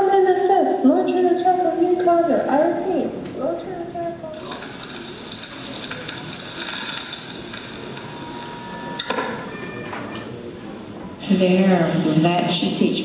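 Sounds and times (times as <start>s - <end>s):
hissing crackling over loudspeakers: 4.3s - 9.5s.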